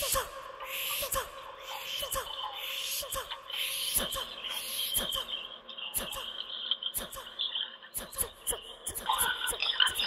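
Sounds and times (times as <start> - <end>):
breathy hiss: 0.0 - 5.4.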